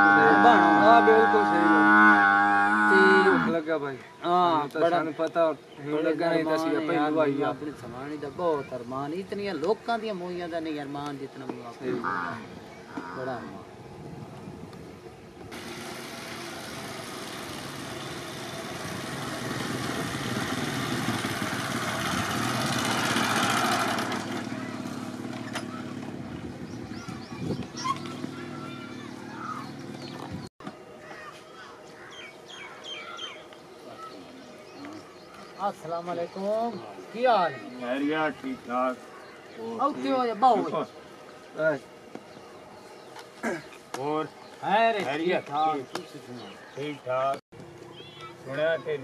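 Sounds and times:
cow mooing: 0.0s - 3.6s
motorcycle engine approaching: 15.5s - 30.5s.

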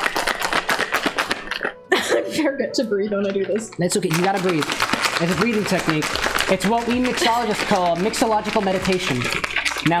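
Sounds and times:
ice rattling in cocktail shaker: 3.3s - 10.0s.

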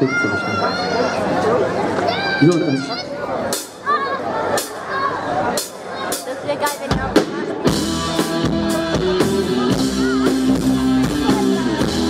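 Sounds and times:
rock band playing: 3.4s - 12.0s.

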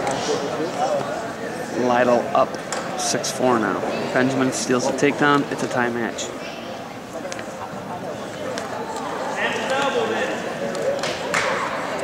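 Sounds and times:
crowd chatter: 0.0s - 12.0s
voices shouting and talking: 0.0s - 12.0s.

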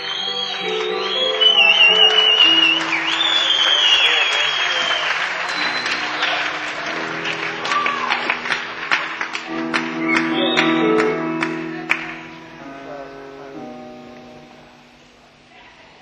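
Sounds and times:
high wavering whistles: 0.0s - 6.4s, 10.0s - 11.5s
audience applauding and cheering: 0.0s - 12.6s.

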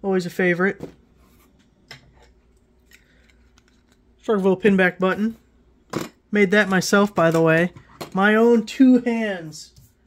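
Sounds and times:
faint clicks of small items: 1.6s - 4.1s.

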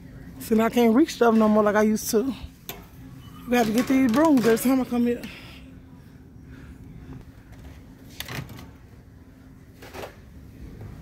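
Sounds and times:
low store hum: 0.0s - 11.0s.

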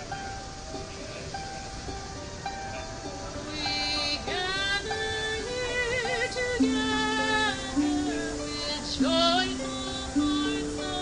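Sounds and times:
small harp: 0.0s - 11.0s
woman singing long notes: 3.3s - 11.0s.

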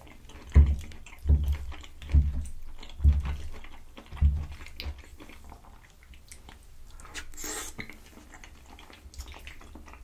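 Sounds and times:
chewing pasta: 0.0s - 10.0s
wet mouth clicks: 4.7s - 10.0s.

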